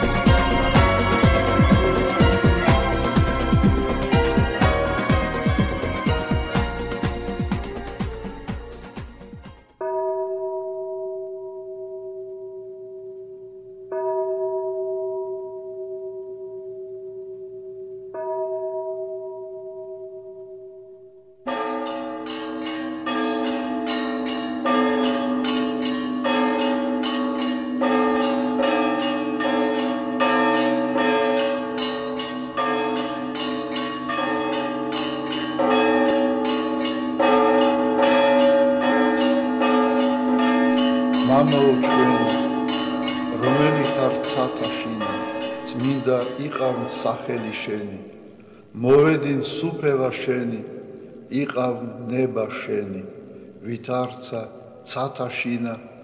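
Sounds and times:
church bells ringing: 0.0 - 8.9, 9.7 - 56.0
person speaking: 41.1 - 56.0.

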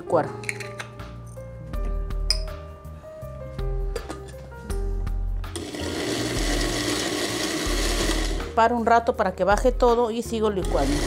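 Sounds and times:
background music: 0.0 - 11.0
blender running: 5.5 - 8.5, 10.6 - 11.0.

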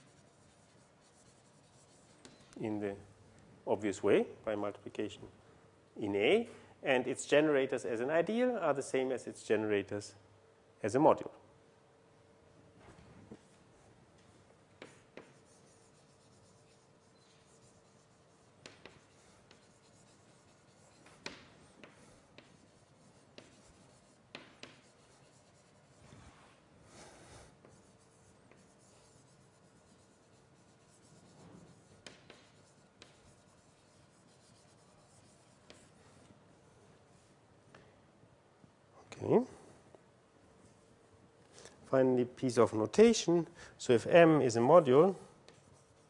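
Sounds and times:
writing on a board: 0.0 - 2.6, 14.8 - 26.4, 27.3 - 36.3, 45.4 - 46.0.

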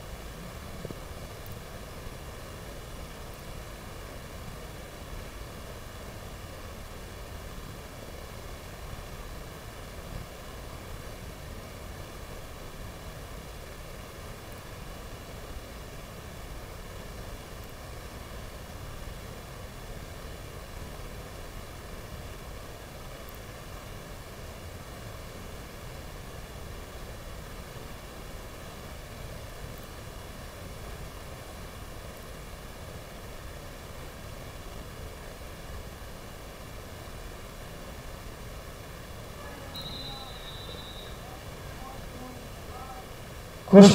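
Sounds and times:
steady background noise: 0.0 - 43.9
brief high tone: 39.6 - 41.4.

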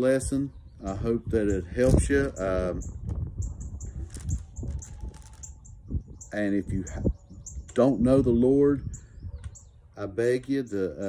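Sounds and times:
small bird chirping: 0.5 - 8.0, 8.8 - 9.9.

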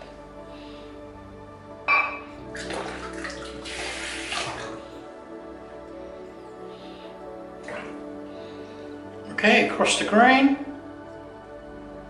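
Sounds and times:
soft background music: 0.0 - 12.0
water running from a tap: 2.5 - 4.8.

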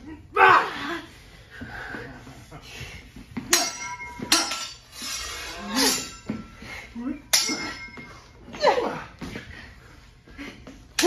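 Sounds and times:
swords clashing and ringing: 3.5 - 8.7.

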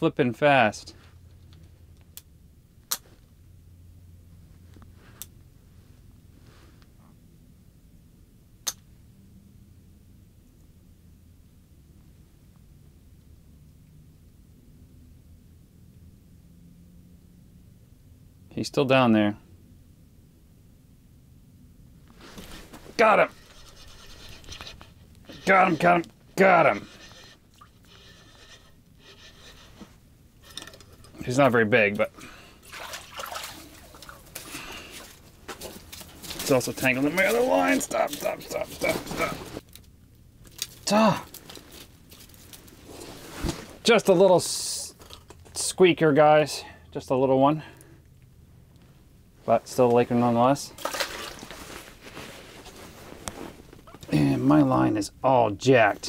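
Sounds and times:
rustling of heavy clothing: 22.1 - 30.1, 32.6 - 39.7, 41.3 - 43.9, 50.8 - 54.1
fishing reel cranking: 26.8 - 29.7.

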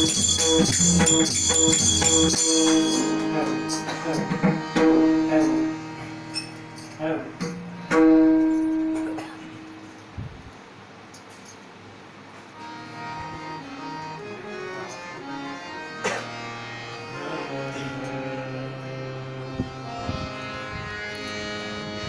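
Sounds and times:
harmonium melody: 0.0 - 10.1, 12.4 - 22.0.

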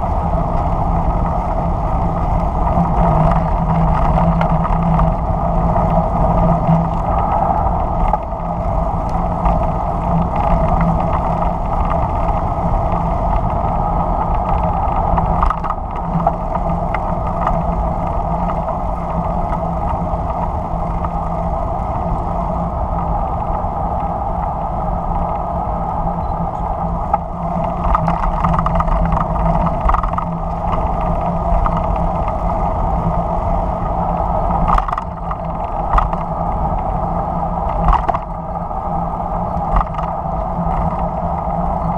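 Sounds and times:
car driving on paved road: 0.0 - 41.9.

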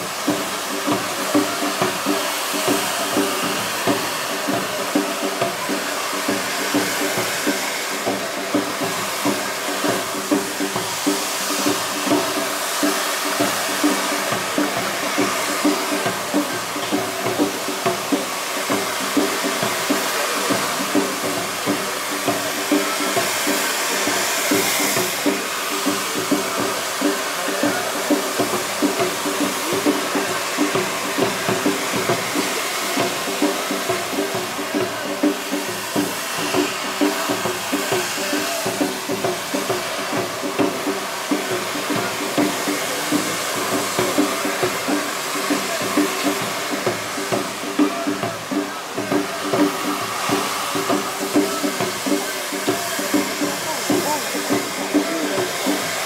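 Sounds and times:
fireworks spraying sparks hiss: 0.0 - 56.0.

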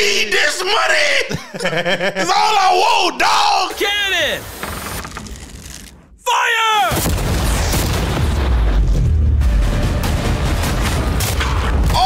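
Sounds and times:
cannon boom: 6.9 - 12.0.

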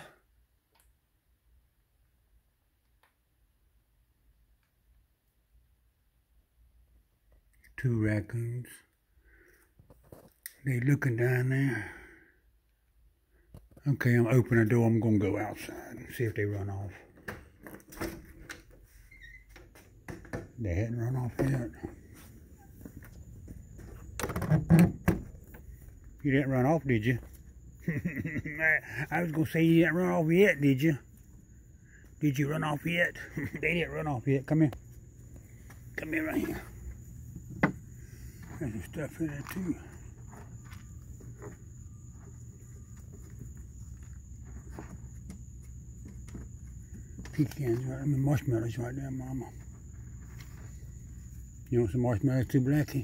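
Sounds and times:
rustling on concrete: 34.7 - 47.9.

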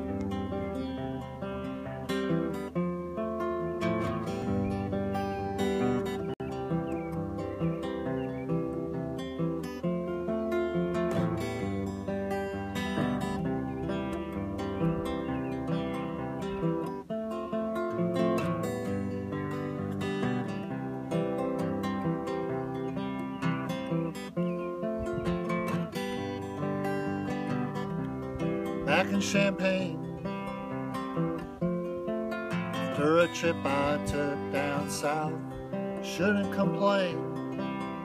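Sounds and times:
acoustic guitar strummed: 0.0 - 38.0.

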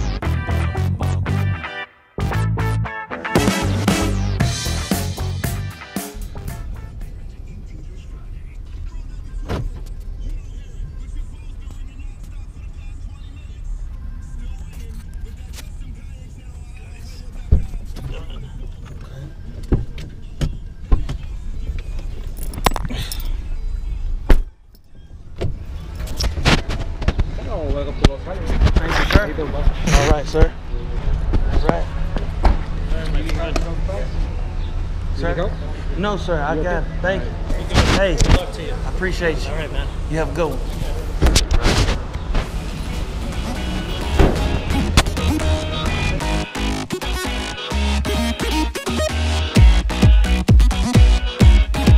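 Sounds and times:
voices: 6.3 - 48.7.

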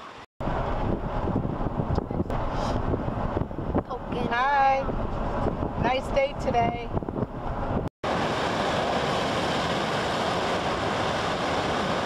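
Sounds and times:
surf breaking over rocks: 8.0 - 12.0.

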